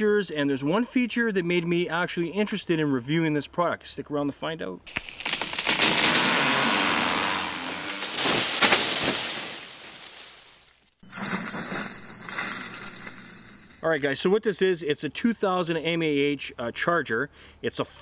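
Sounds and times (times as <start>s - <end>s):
sharp cracks: 4.9s - 10.9s
glass shattering and tinkling: 8.0s - 13.8s.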